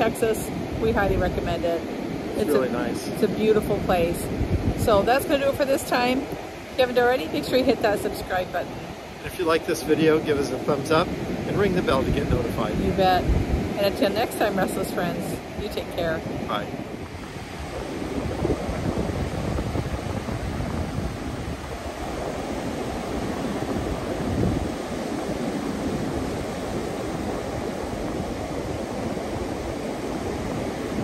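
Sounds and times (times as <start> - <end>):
ocean surf breaking on beach: 0.0 - 31.0
wind buffeting microphone: 0.0 - 31.0.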